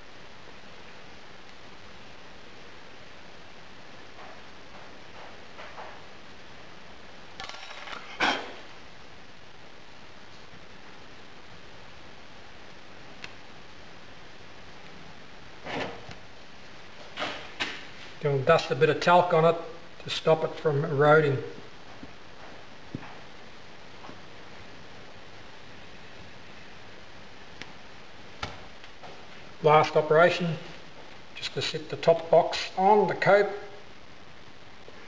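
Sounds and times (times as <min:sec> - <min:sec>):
steady hiss: 0:00.0 - 0:35.0.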